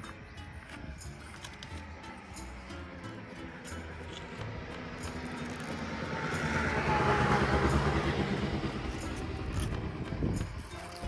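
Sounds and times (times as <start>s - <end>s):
vehicle passing by: 2.9s - 10.6s.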